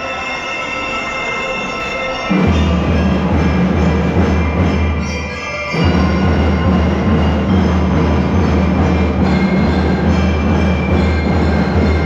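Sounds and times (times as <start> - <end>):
high bell-lyre notes: 0.0 - 12.0
massed drums: 2.3 - 12.0.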